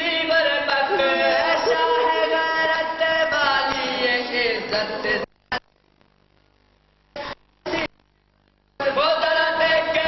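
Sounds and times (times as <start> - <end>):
young men chanting a lament: 0.0 - 5.3, 8.8 - 10.0.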